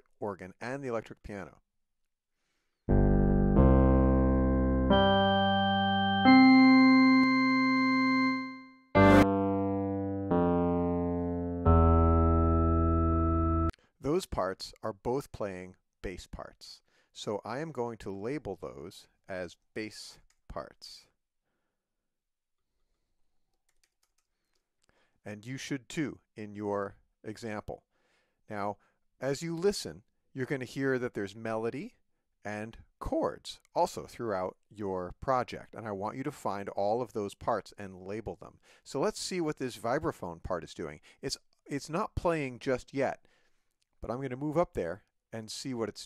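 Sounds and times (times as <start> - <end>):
electric piano bass notes: 2.9 - 8.4, 9.0 - 13.7.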